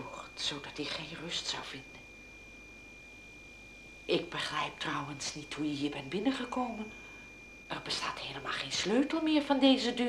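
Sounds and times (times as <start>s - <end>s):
faint steady hiss: 0.0s - 10.0s
low hum: 0.0s - 10.0s
thin high-pitched tone: 2.7s - 10.0s.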